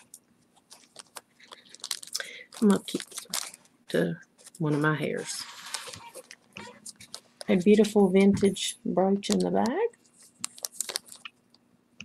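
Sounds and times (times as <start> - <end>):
plastic bags crinkling and clicking: 0.0 - 7.9, 9.3 - 11.6.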